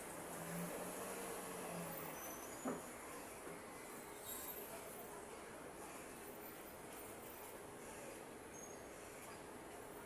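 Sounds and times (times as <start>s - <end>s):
street noise: 0.0s - 10.0s.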